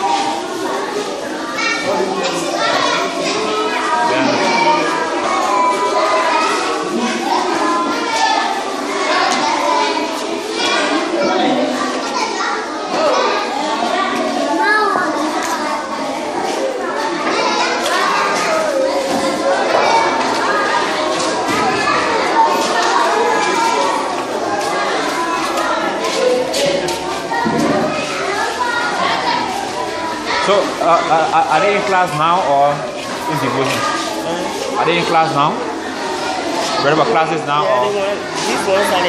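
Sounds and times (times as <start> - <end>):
children talking and calling out: 0.0 - 39.0.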